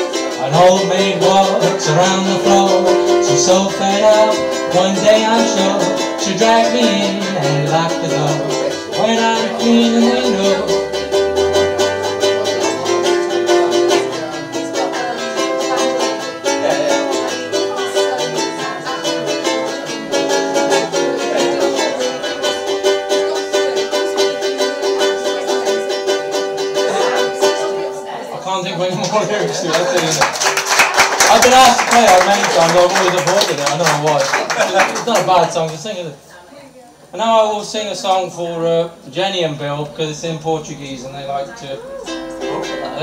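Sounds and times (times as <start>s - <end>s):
ukulele strumming: 0.0s - 36.1s, 37.4s - 43.0s
man speaking: 28.4s - 30.3s, 31.2s - 36.2s, 37.2s - 42.0s.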